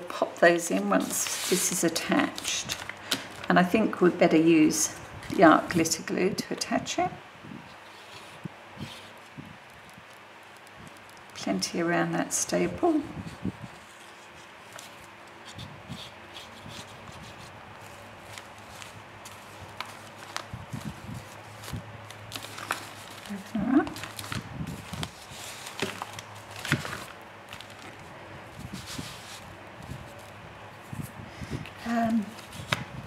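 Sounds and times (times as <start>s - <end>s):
electric fan humming: 0.0s - 33.0s
paper tapping and rustling: 16.4s - 23.3s, 23.9s - 28.0s, 32.4s - 33.0s.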